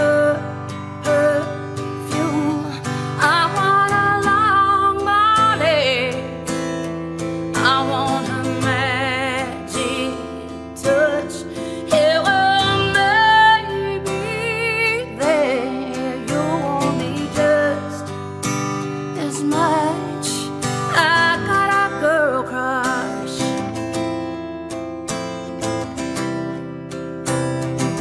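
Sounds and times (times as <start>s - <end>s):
strummed acoustic guitar: 0.0s - 28.0s
woman singing a country ballad: 0.0s - 28.0s.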